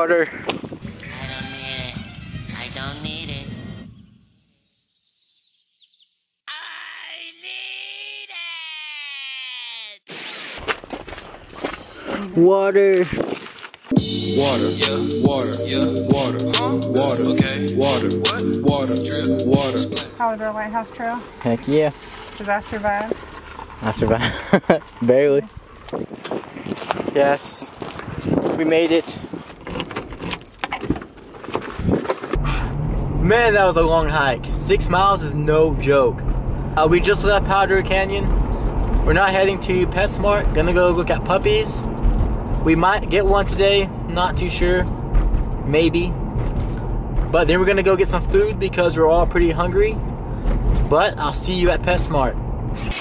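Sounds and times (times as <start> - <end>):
faint high bird chirps: 3.8 - 6.4
keys jangling against car door: 29.5 - 31.0.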